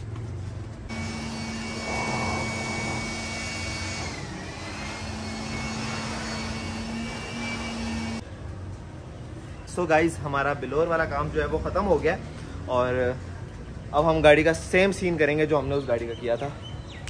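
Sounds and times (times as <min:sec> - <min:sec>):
electric blower whining: 0:00.9 - 0:08.2.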